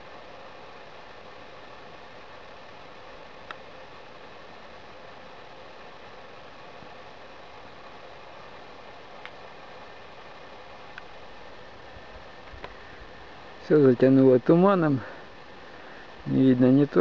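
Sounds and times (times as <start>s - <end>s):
steady hiss: 0.0s - 17.0s.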